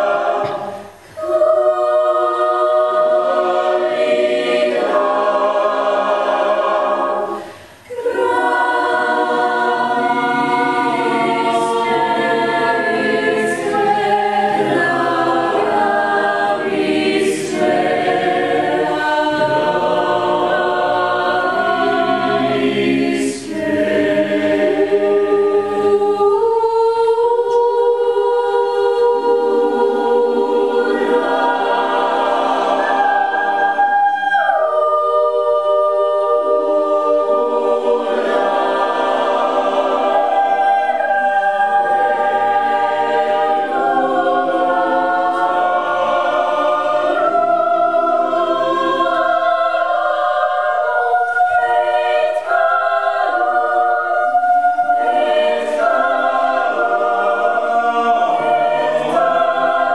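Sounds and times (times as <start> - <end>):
mixed choir singing a cappella: 0.0 - 59.9.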